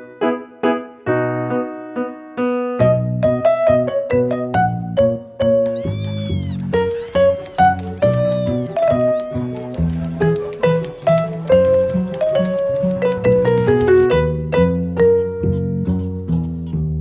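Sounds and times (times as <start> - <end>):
bright keyboard music: 0.0 - 17.0
cat meowing: 5.6 - 9.9.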